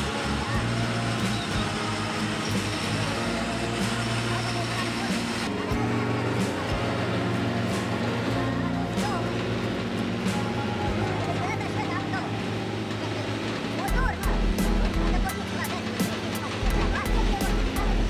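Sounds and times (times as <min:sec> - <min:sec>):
background music: 0:00.0 - 0:18.0
diesel truck engines at low speed: 0:00.0 - 0:18.0
street traffic: 0:00.0 - 0:18.0.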